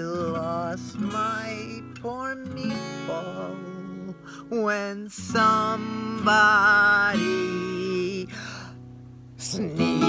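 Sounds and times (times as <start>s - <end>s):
acoustic guitar strumming chords: 0.0s - 10.0s
woman singing: 9.4s - 10.0s.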